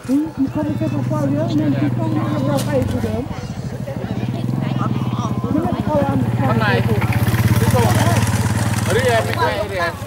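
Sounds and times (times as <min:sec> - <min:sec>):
people talking: 0:00.0 - 0:10.0
small engine idling: 0:00.2 - 0:10.0.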